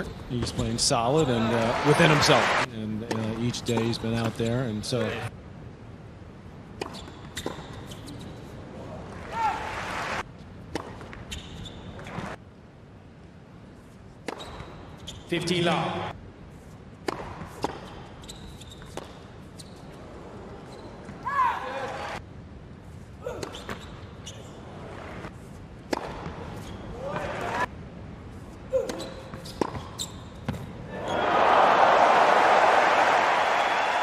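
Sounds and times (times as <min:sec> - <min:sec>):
crowd applause: 0:01.4 - 0:02.7, 0:09.6 - 0:10.2, 0:31.2 - 0:34.0
sneaker squeaks: 0:06.8 - 0:08.5, 0:10.8 - 0:12.4, 0:14.2 - 0:15.4, 0:17.1 - 0:21.6, 0:23.2 - 0:27.6, 0:28.7 - 0:31.3
tennis ball bouncing on hard court: 0:10.7 - 0:11.3, 0:17.0 - 0:18.0, 0:18.8 - 0:19.3, 0:25.8 - 0:27.3, 0:28.9 - 0:30.7
tennis ball struck by rackets: 0:17.0 - 0:17.9, 0:25.9 - 0:26.4.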